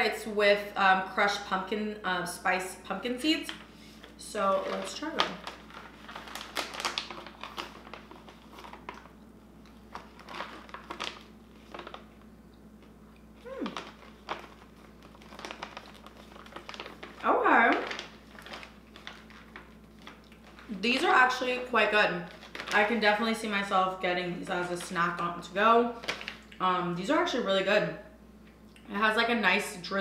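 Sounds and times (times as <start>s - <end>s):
snack bag crinkling: 3.4s - 23.7s, 25.9s - 26.6s
person voice sounds: 13.4s - 14.0s.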